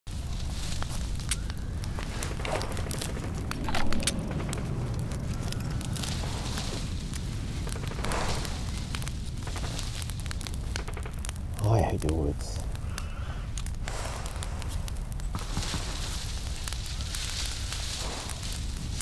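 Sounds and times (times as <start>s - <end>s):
large fire crackling and popping: 0.1s - 19.0s
low fire rumble: 0.1s - 19.0s.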